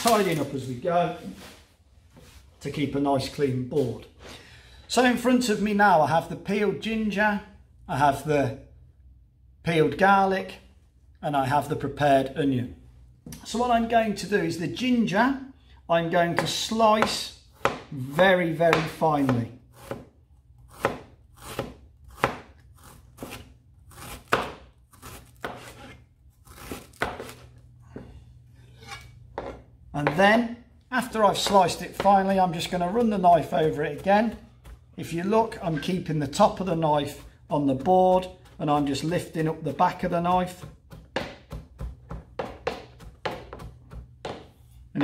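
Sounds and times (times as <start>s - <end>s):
knife chopping on board: 16.4s - 18.0s, 18.7s - 28.1s, 31.2s - 35.0s, 36.6s - 44.7s.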